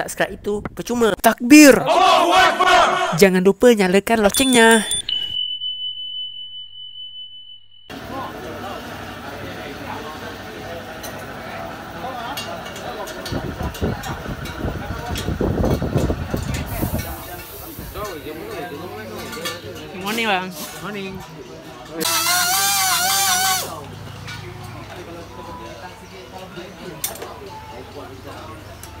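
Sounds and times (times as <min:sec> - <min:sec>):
indistinct voices: 0:04.1 - 0:05.4
high electronic tone: 0:04.2 - 0:07.9.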